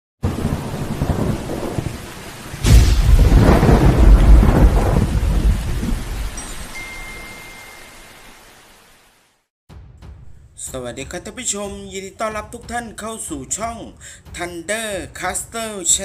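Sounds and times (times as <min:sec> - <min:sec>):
sharp thunderclap: 0:00.2 - 0:06.4
thunder rumbling: 0:00.2 - 0:06.4
rain hiss: 0:00.2 - 0:09.5.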